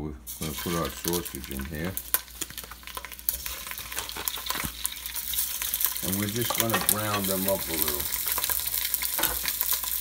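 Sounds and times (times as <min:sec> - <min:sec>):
sausages sizzling in hot oil: 0:00.3 - 0:10.0.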